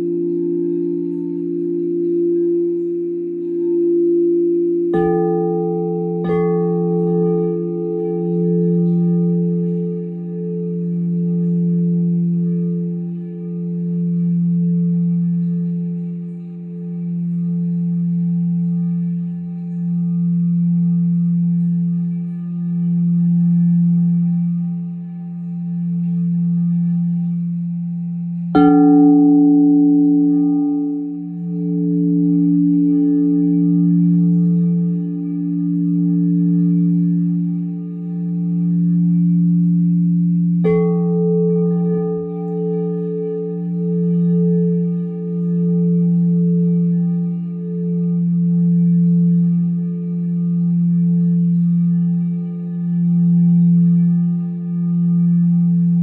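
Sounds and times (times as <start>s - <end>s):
singing bowl struck: 0.0s - 56.0s
singing bowls ringing: 0.0s - 56.0s.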